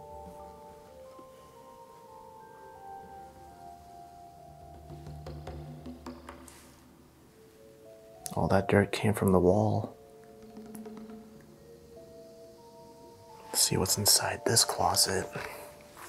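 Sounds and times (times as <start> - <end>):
bell-like mallet music: 0.0 - 6.6, 7.4 - 16.0.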